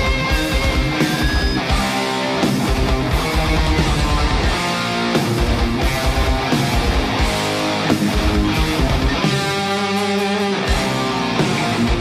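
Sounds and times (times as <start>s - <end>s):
live heavy metal band: 0.0s - 12.0s.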